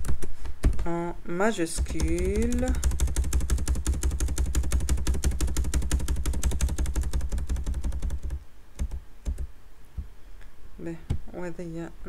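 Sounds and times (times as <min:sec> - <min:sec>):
computer keyboard typing: 0:00.0 - 0:01.0, 0:01.6 - 0:09.5.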